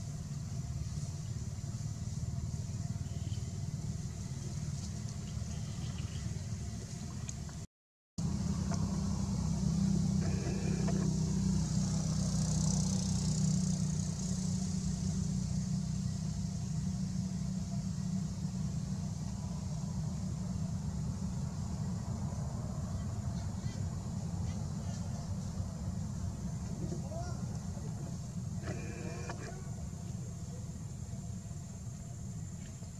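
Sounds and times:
motor humming: 0:08.2 - 0:13.0, 0:27.8 - 0:30.2.

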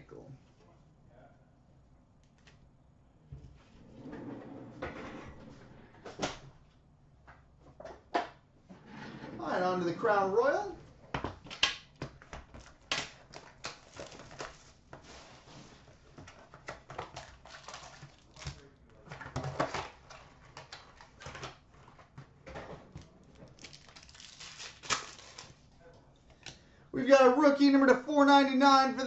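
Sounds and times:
cardboard and wrapper rustling: 0:12.1 - 0:25.7.

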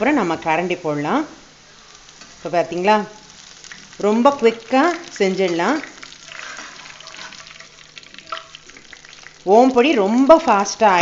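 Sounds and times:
frying in hot oil: 0:00.0 - 0:11.0
metal skimmer stirring: 0:05.4 - 0:08.9.

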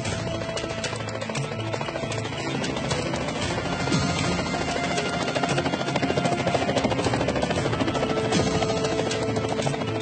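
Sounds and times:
helicopter rotor chopping: 0:00.0 - 0:10.0
music: 0:00.0 - 0:10.0.

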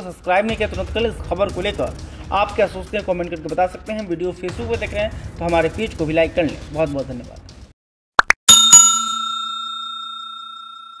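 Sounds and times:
bell-like chime ringing: 0:08.5 - 0:11.0.

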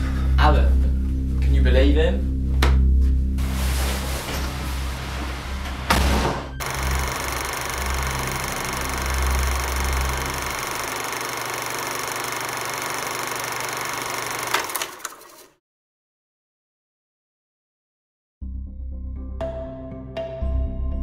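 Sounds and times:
door banging shut: 0:05.7 - 0:06.6
steady high hum: 0:06.6 - 0:14.5.

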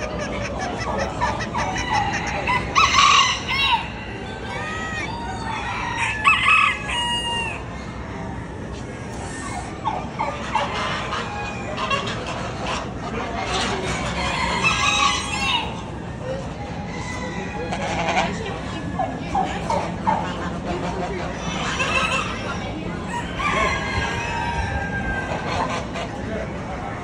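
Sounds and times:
roosters crowing: 0:00.0 - 0:26.2
chickens clucking: 0:00.0 - 0:27.0
poultry barn background noise: 0:00.0 - 0:27.0.

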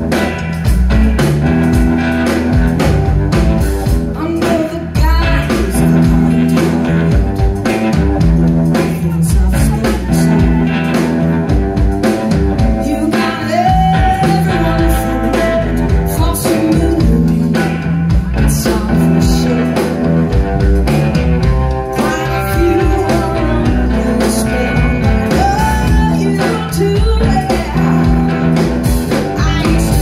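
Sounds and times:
bending lead melody: 0:00.0 - 0:30.0
live blues band playing: 0:00.0 - 0:30.0.

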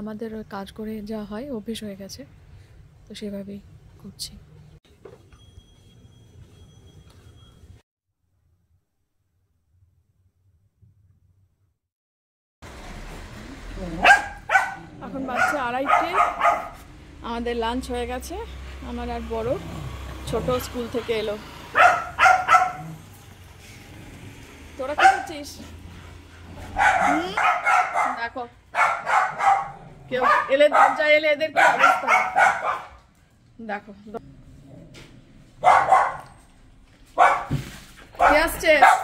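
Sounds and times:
woman talking: 0:00.0 - 0:02.3, 0:03.1 - 0:04.5, 0:14.9 - 0:16.4, 0:17.2 - 0:19.6, 0:20.2 - 0:21.5, 0:24.8 - 0:25.8, 0:27.0 - 0:28.6, 0:30.1 - 0:32.4, 0:33.6 - 0:34.2, 0:38.2 - 0:39.0
dog barking: 0:14.0 - 0:16.9, 0:21.7 - 0:23.0, 0:24.9 - 0:25.5, 0:26.6 - 0:33.0, 0:35.6 - 0:36.4, 0:37.2 - 0:37.6, 0:38.2 - 0:39.0.

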